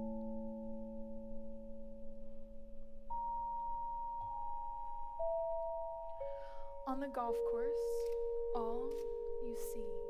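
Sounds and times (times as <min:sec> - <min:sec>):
high vibraphone note: 0:03.1 - 0:10.0
vibraphone chord ringing: 0:03.1 - 0:10.0.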